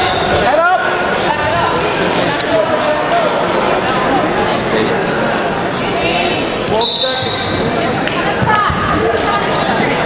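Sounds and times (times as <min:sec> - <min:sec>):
people's voices in gym: 0:00.0 - 0:10.0.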